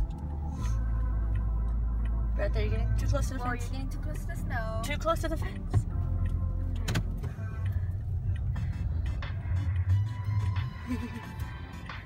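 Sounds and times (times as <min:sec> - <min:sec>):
car interior road noise: 0:00.0 - 0:12.0.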